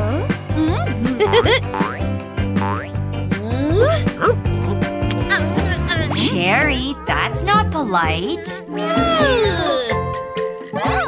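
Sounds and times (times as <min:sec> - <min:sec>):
cartoon background music: 0:00.0 - 0:11.0
springy boing sound effects: 0:00.6 - 0:03.0.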